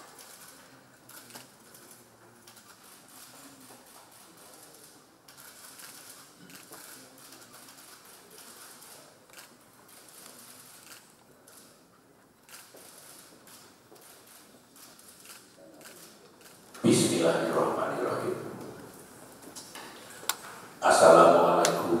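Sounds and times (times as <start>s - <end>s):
low murmured conversation: 0.0s - 22.0s.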